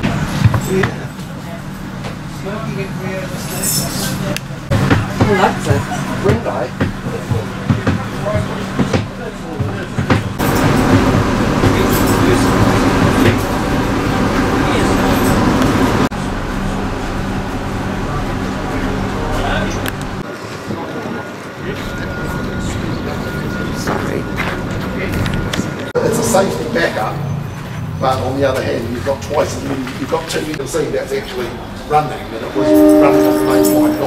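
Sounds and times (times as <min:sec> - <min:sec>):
people talking: 0:00.0 - 0:10.2, 0:11.6 - 0:16.0, 0:18.0 - 0:34.0
thin high tone: 0:25.9 - 0:28.0.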